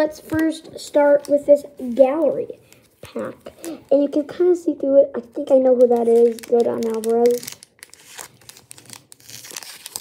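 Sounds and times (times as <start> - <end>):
plastic wrapper crinkling: 0.0 - 4.1, 5.2 - 10.0.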